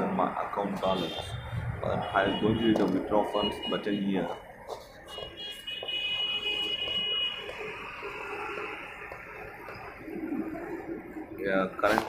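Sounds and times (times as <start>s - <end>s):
high-pitched buzzer tone: 5.1s - 9.1s.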